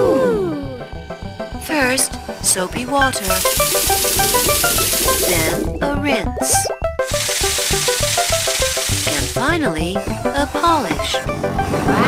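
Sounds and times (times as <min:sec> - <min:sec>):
light background music: 0:00.0 - 0:12.0
water jets hissing: 0:03.2 - 0:05.7, 0:07.1 - 0:09.5.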